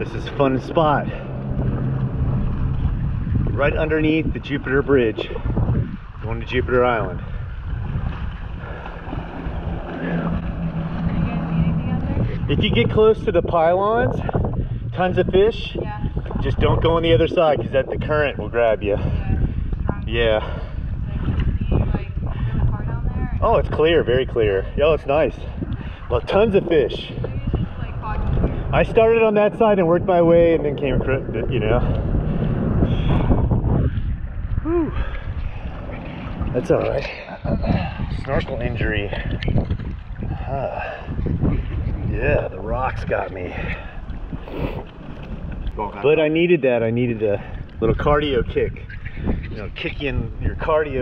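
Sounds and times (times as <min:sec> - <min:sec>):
water sloshing: 0:00.0 - 0:50.2
steady low hum: 0:00.0 - 0:51.0
wind buffeting microphone: 0:00.0 - 0:51.0.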